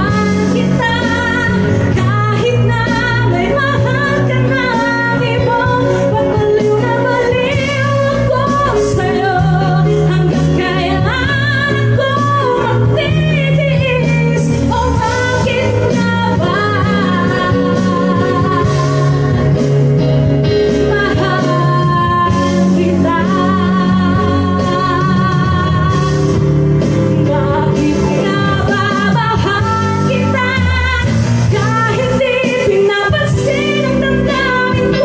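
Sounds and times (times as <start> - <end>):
low bass notes: 0.0 - 35.0
woman singing into microphone: 0.0 - 35.0.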